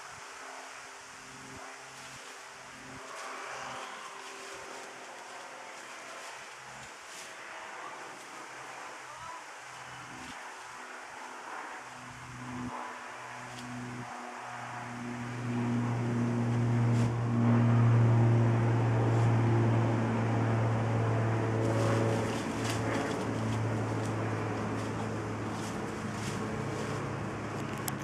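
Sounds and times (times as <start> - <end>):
motor engine hum: 0.0 - 28.0.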